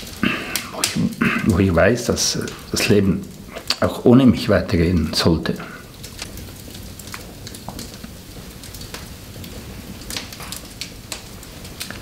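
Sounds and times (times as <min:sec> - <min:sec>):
wood fire crackling and popping: 0:00.0 - 0:12.0.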